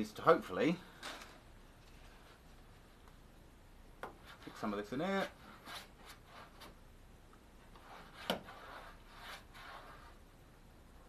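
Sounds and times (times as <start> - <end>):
paintbrush scratchy strokes: 7.8 - 10.2.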